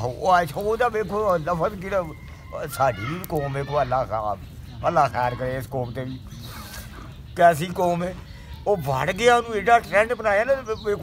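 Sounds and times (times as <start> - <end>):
man speaking: 0.0 - 6.3.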